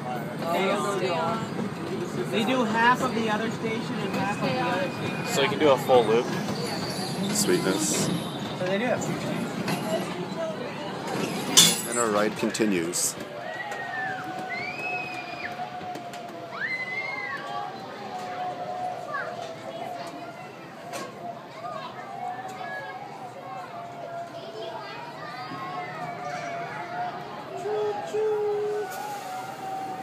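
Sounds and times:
low background murmur: 0.0 - 30.0
brief hiss: 28.8 - 29.8.

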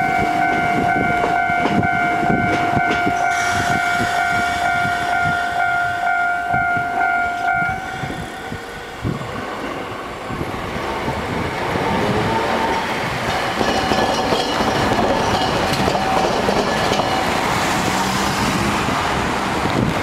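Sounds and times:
streetcar running rumble: 0.0 - 20.0
wheel clatter over crossing: 13.0 - 20.0.

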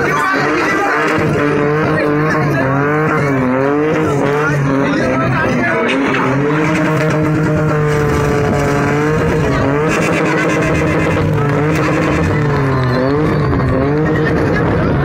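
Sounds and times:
car engine revving hard: 0.0 - 15.0.

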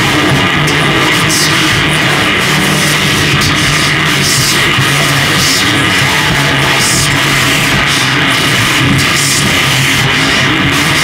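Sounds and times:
harsh noise music: 0.0 - 11.0
steady low hum: 0.0 - 11.0.

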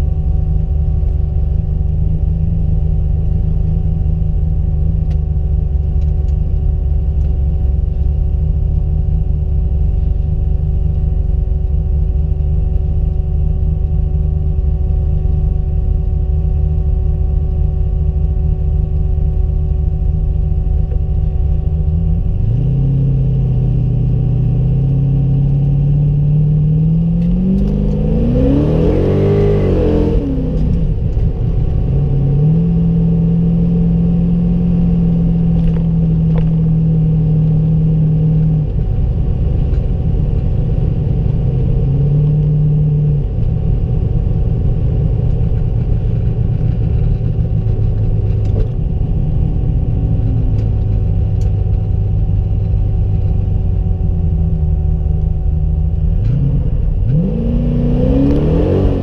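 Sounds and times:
car engine revving: 22.2 - 53.2, 55.8 - 59.0.

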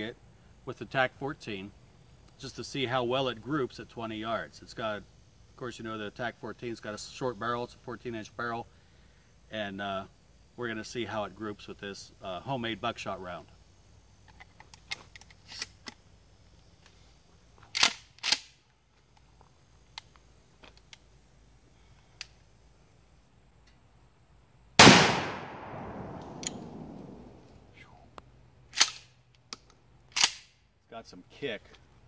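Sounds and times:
loud shotgun shot with echo: 24.8 - 27.5
shell loading clicks: 24.8 - 27.6, 28.7 - 30.5.

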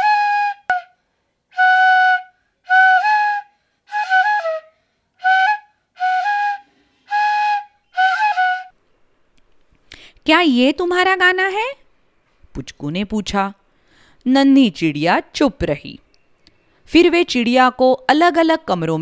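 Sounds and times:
bamboo flute playing a tune: 0.0 - 8.8.

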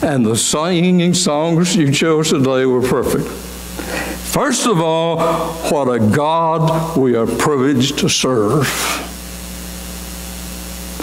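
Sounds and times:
low electrical hum: 0.0 - 11.0
steady hiss: 0.0 - 11.0.

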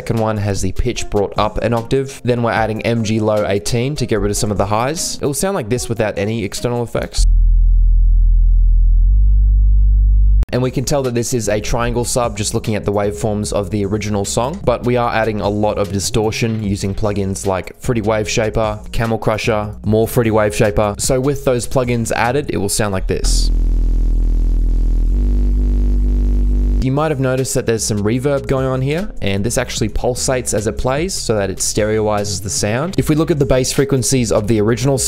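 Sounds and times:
sustained sub-bass synth note: 7.2 - 10.5, 23.2 - 26.8.

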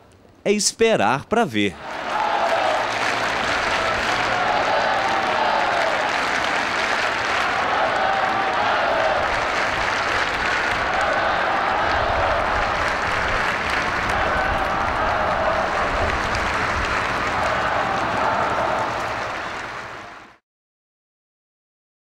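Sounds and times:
crowd applauding: 1.8 - 20.4.

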